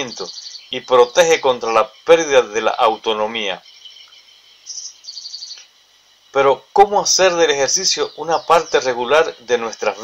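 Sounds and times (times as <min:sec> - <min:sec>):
small bird chirping: 0:00.0 - 0:10.0.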